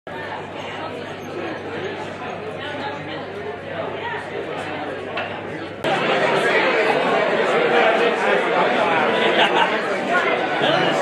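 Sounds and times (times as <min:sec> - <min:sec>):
murmur of overlapping voices: 0:00.1 - 0:11.0.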